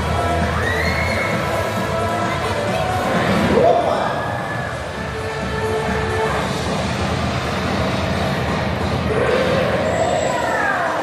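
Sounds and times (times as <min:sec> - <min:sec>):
loudspeaker music: 0:00.0 - 0:11.0.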